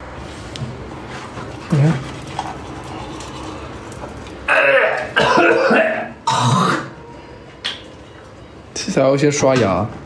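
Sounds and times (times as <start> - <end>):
man clearing throat: 4.5 - 6.9.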